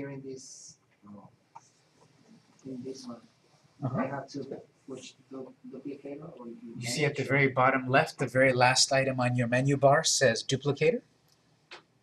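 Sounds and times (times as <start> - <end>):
person murmuring: 3.8 - 10.9.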